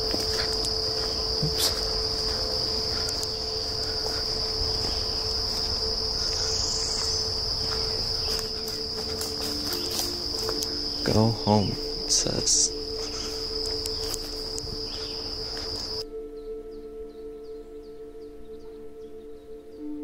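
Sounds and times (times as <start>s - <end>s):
footstep clicks on path: 0.0s - 16.0s
insect chorus drone: 0.0s - 20.0s.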